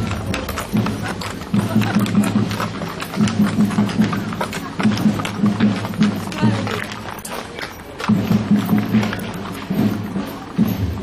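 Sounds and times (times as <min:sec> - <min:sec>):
horse hooves clip-clopping on asphalt: 0:00.0 - 0:11.0.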